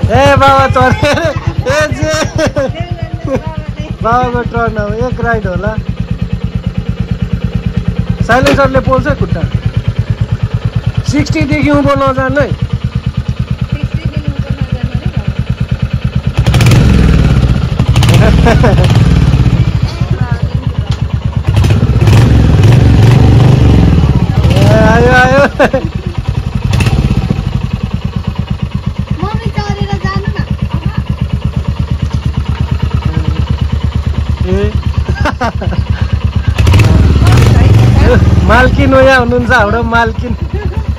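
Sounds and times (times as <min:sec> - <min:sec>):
motorcycle engine idling: 0:00.0 - 0:40.9.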